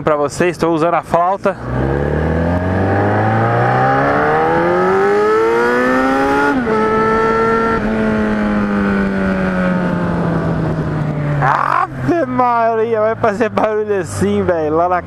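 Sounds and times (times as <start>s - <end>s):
motorcycle engine accelerating: 1.5s - 14.8s.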